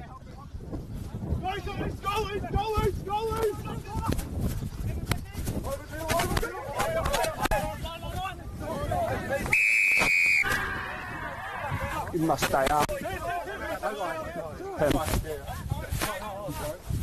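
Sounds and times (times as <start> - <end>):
players shouting: 8.7 - 12.1
referee's whistle blast: 9.5 - 10.7.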